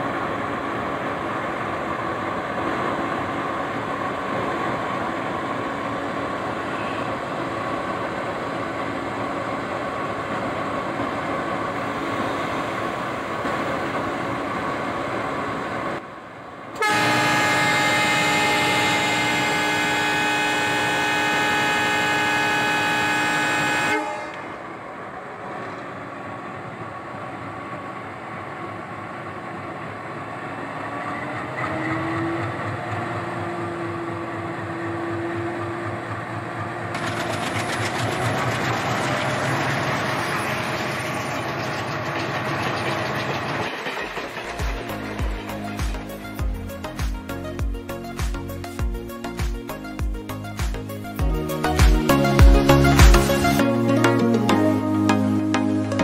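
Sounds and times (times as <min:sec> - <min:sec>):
moving train rumble: 0:00.0 - 0:54.6
train horn: 0:06.6 - 0:07.2, 0:16.8 - 0:24.8.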